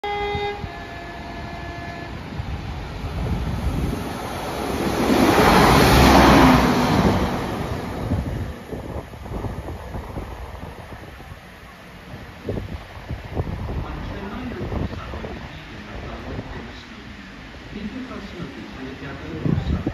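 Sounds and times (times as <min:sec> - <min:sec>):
two-tone train horn: 0:00.0 - 0:02.4
train passing with engine and wheel noise: 0:00.0 - 0:19.9.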